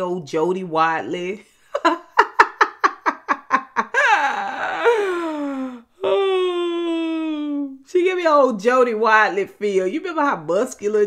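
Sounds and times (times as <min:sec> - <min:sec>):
woman laughing hard: 0:01.7 - 0:07.1
woman's long held vocal sound: 0:04.0 - 0:07.7.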